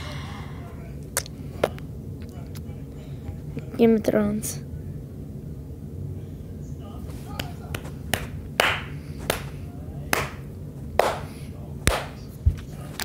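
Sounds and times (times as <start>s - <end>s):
sharp clap-like strikes: 7.4s - 12.3s.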